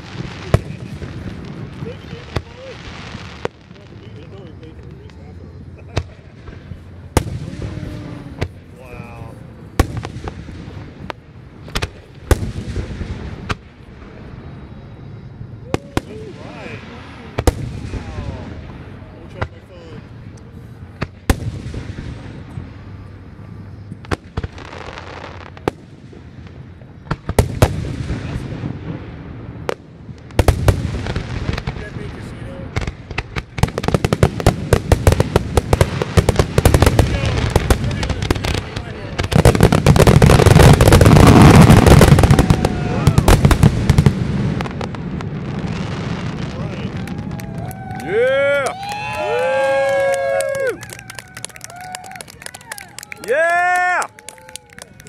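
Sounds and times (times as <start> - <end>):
fireworks bursting: 0.0 - 55.0.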